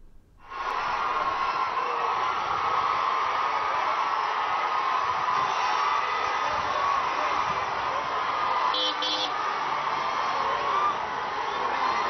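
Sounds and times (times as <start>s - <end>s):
large crowd cheering: 0.0s - 12.0s.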